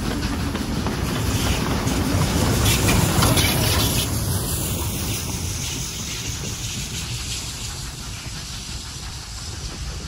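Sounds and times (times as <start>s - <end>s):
steam locomotive rumbling: 0.0s - 10.0s
wind buffeting microphone: 0.0s - 10.0s.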